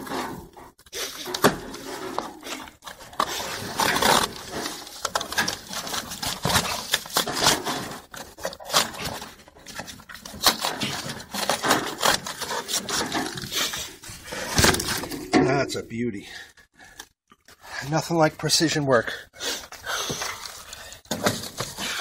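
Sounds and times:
cardboard being cut and torn: 0.0 - 15.1.

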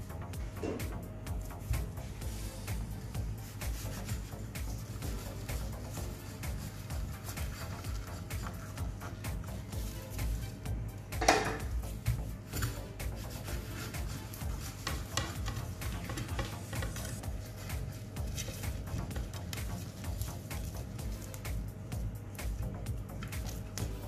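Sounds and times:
faint background music: 0.0 - 24.0
gloved hands rustling and crackling: 1.1 - 24.0
knock: 11.2 - 11.7.

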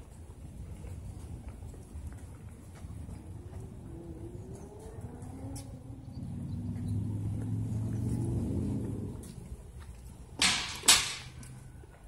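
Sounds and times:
motor vehicle passing by: 2.4 - 10.4.

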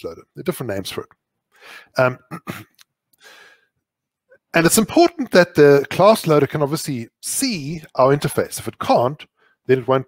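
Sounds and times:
soft breath: 1.5 - 2.0, 3.2 - 3.8.

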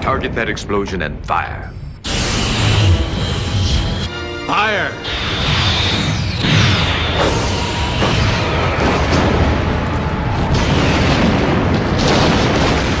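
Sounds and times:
sharp explosion blasts: 6.4 - 13.0
deep explosion rumble: 8.8 - 13.0.

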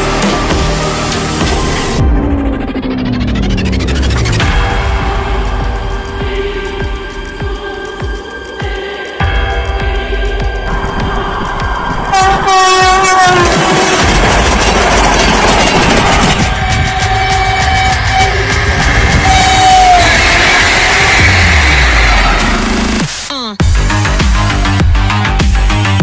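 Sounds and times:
train rumbling on track: 0.0 - 23.2
train horn blasts: 12.1 - 14.2, 15.4 - 21.8.

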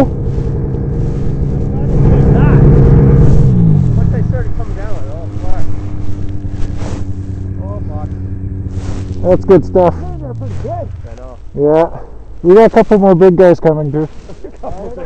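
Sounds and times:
snowmobile engine running: 0.0 - 15.0
people talking: 1.7 - 2.7, 3.9 - 5.8, 7.6 - 8.2, 9.2 - 15.0
people laughing: 14.2 - 15.0.

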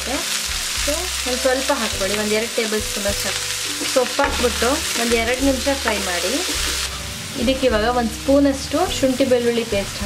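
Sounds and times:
vegetables sizzling in hot oil: 0.0 - 10.0.

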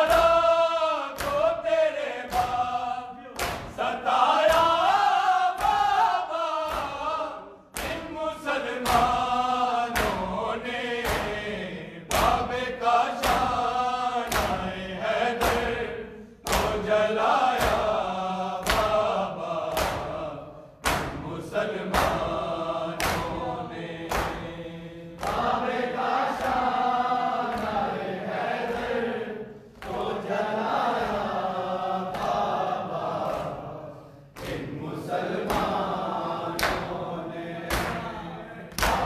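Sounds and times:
hands slapping chests: 0.0 - 29.0, 29.6 - 39.0
men chanting together: 0.0 - 39.0.

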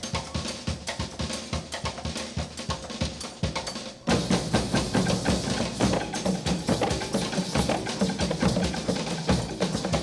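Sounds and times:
hand drum ensemble: 0.0 - 10.0.

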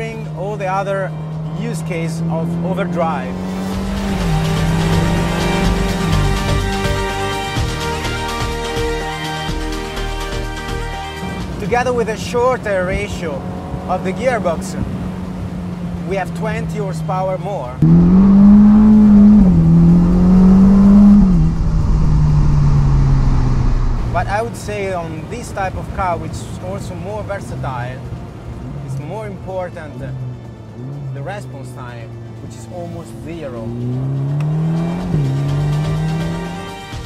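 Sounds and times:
car engine accelerating: 0.0 - 7.8, 11.4 - 24.7, 26.9 - 36.8
background music: 0.0 - 14.8, 24.0 - 37.0.

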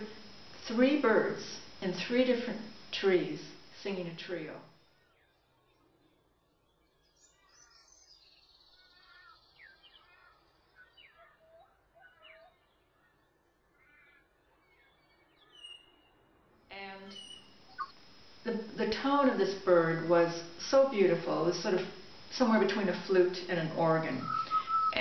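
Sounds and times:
bird whistling song: 7.0 - 12.7, 15.3 - 16.2, 17.1 - 18.0, 24.2 - 25.0.

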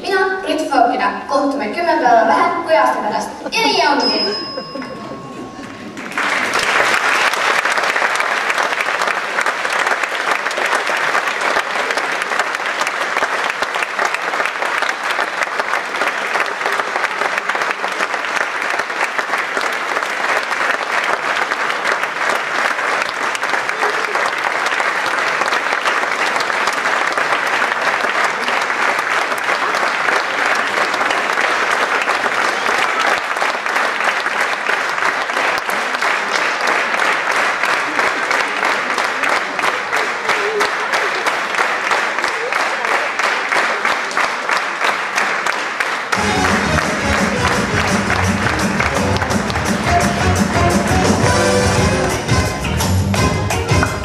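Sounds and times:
audience applauding: 3.2 - 54.0.

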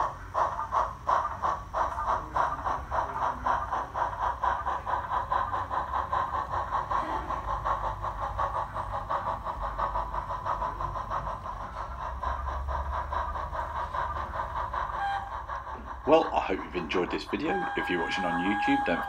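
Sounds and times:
model train rumbling on track: 0.0 - 19.0
steam locomotive chuffing: 0.0 - 19.0.

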